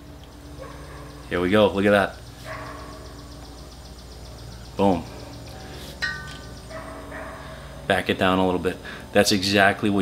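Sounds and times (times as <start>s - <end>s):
steady low hum: 0.0s - 10.0s
bell-like ring: 6.0s - 7.2s.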